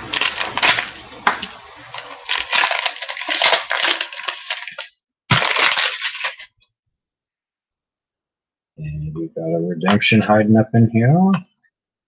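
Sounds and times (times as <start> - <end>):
card pack wrapper crinkling and tearing: 0.0 - 6.6.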